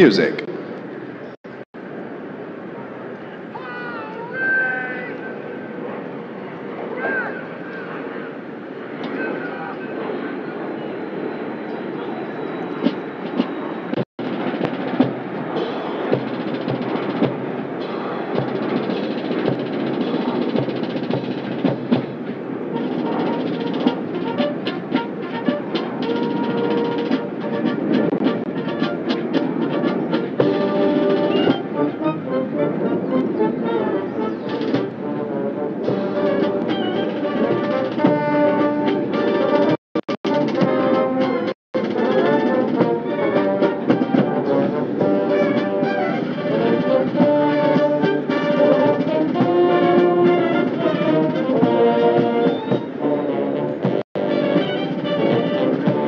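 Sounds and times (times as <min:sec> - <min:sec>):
marching band playing: 0:12.8 - 0:56.0
drum beats: 0:12.9 - 0:31.8, 0:34.5 - 0:35.0, 0:35.8 - 0:53.0, 0:53.8 - 0:56.0
brass chords: 0:14.2 - 0:56.0.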